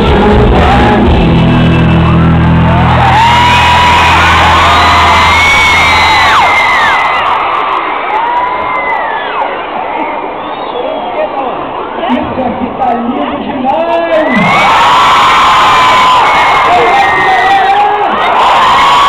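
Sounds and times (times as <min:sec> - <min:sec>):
crowd cheering and screaming: 0:00.1 - 0:12.4, 0:13.7 - 0:19.0.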